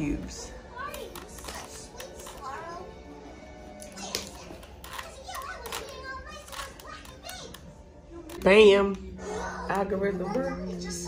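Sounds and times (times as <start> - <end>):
children chattering: 0.6 - 11.0
puzzle cube plastic clicks: 4.6 - 7.6.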